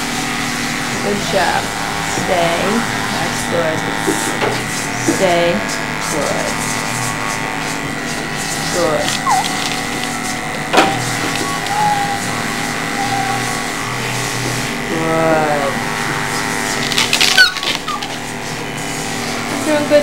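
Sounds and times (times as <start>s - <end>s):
electric clippers buzzing: 0.0s - 20.0s
short sliding pitched sounds: 8.7s - 14.8s.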